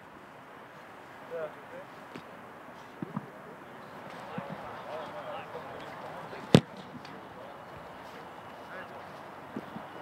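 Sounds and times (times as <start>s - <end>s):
faint distant voices: 0.4s - 10.0s
foot kicking football thud: 6.5s - 6.8s.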